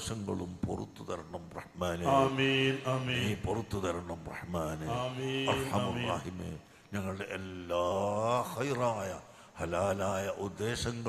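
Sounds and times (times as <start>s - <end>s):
man chanting a prayer: 0.0s - 11.0s.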